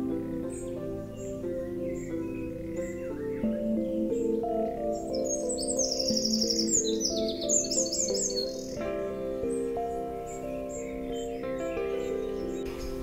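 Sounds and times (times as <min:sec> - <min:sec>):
soft background music: 0:00.0 - 0:13.0
songbird chirping: 0:00.0 - 0:13.0.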